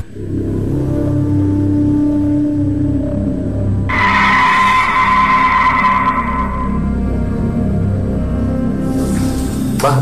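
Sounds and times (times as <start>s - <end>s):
low droning music: 0.0s - 10.0s
loud screeching horror effect: 3.9s - 7.3s.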